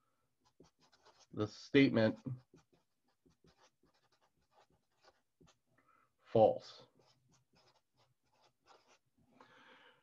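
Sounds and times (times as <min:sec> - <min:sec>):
marker writing on paper: 0:00.4 - 0:05.7, 0:06.9 - 0:09.1.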